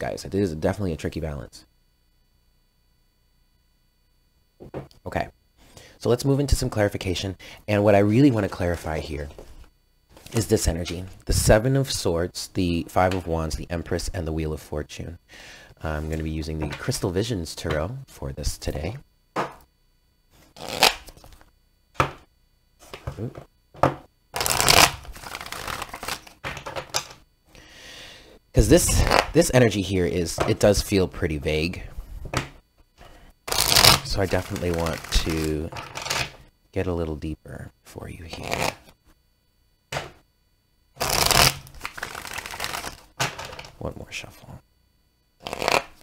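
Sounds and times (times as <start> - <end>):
cards rustling while shuffled: 24.4 - 26.3, 33.5 - 36.3, 41.0 - 43.7, 45.4 - 45.9.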